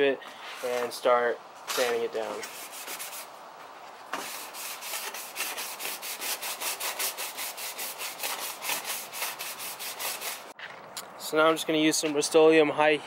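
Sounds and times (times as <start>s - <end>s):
abrasive pad scrubbing metal: 1.9s - 3.3s, 4.2s - 10.5s.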